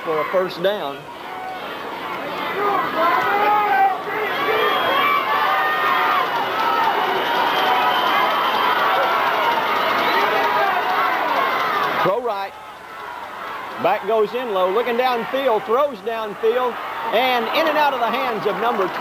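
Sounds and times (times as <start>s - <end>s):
stadium crowd shouting: 0.0s - 19.0s.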